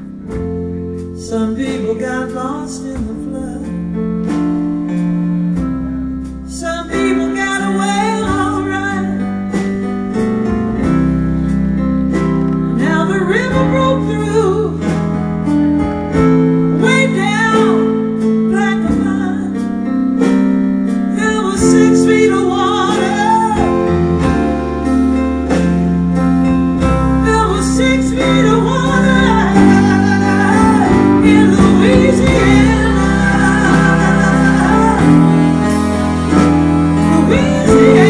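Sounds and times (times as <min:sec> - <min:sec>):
held bass notes: 0:00.0 - 0:38.0.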